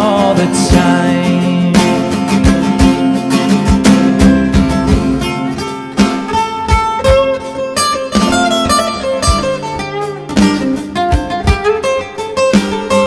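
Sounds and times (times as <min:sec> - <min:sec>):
acoustic guitar: 0:00.0 - 0:13.0.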